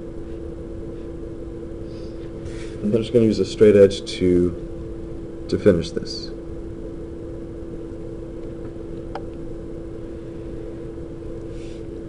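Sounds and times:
background hum with constant tone: 0.0s - 12.0s.

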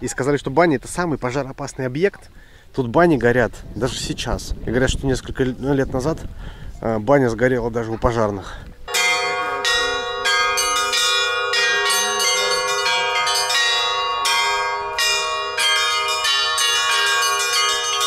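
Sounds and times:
church bells ringing: 8.9s - 18.0s.

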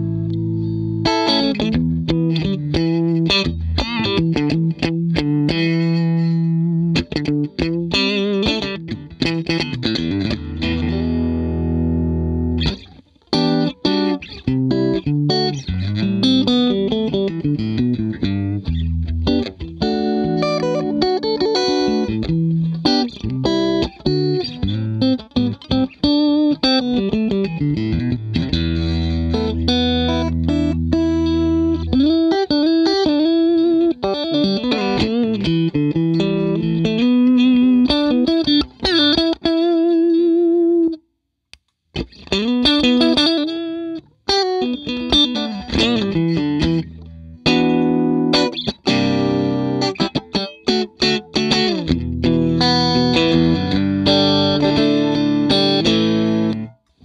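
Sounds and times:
electric guitar with sustain: 0.0s - 57.0s.

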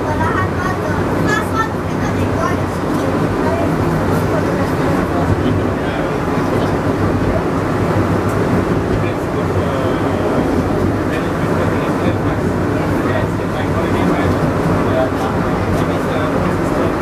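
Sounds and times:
funicular car rolling rumble: 0.0s - 17.0s.

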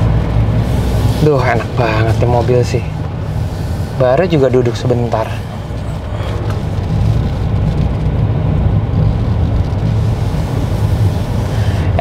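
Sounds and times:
diesel engine: 0.0s - 12.0s
road and tyre noise: 0.0s - 12.0s.

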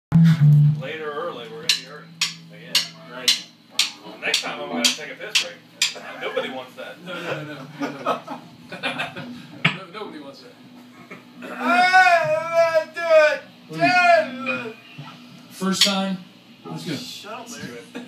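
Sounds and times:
loud low amplified hum: 0.1s - 4.0s
people talking: 0.7s - 10.6s, 11.4s - 18.0s.

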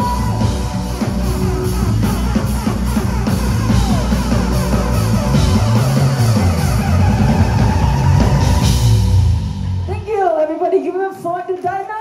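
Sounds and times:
electric guitar: 0.0s - 9.8s
drum kit: 0.0s - 10.6s
bass: 0.0s - 11.3s.

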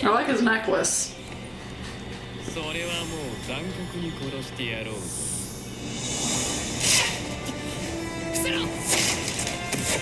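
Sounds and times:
anime soundtrack music: 5.6s - 10.0s.

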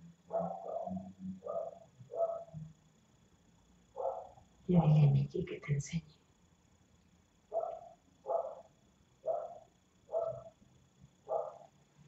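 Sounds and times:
dog barking: 0.3s - 2.6s, 4.0s - 4.4s, 7.5s - 10.5s, 11.2s - 11.7s.

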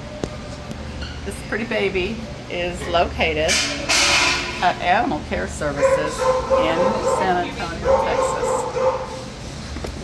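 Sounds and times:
dogs barking: 5.6s - 9.4s.

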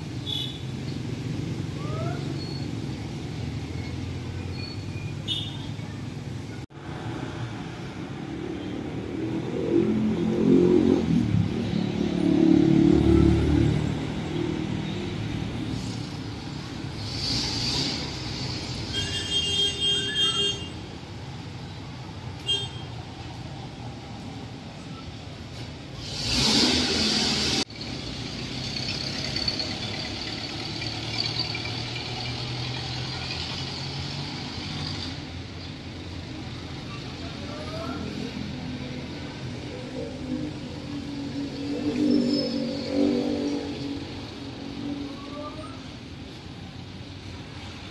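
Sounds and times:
brief high squeal: 1.9s - 2.8s, 4.4s - 5.2s
vehicle engine rumble passing: 6.0s - 18.9s.

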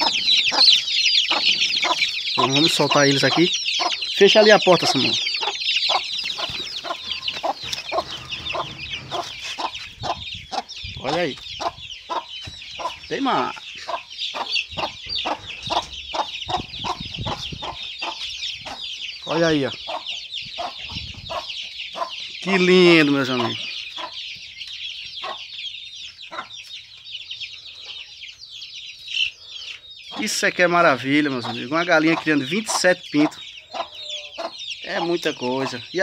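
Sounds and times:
chicks peeping: 0.0s - 36.0s
hen clucking: 0.0s - 36.0s.

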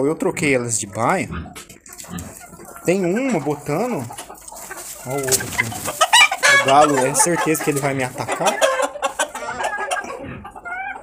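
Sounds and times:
chickens clucking: 0.0s - 11.0s
chicken rising call: 5.0s - 7.6s.

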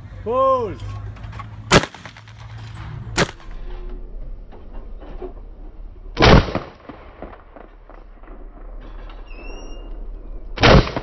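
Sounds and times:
shotgun shot with echo: 1.7s - 2.4s, 3.2s - 3.5s, 6.2s - 7.7s, 10.6s - 11.0s.

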